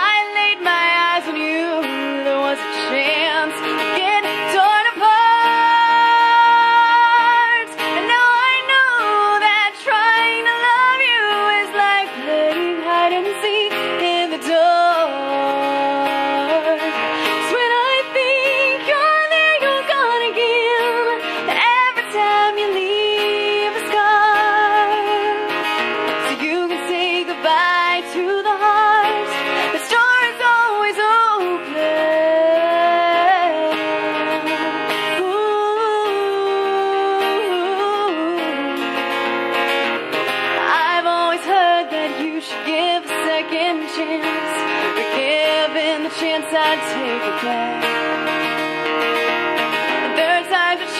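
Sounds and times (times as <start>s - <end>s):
acoustic guitar: 0.0s - 50.9s
woman singing: 0.0s - 50.9s.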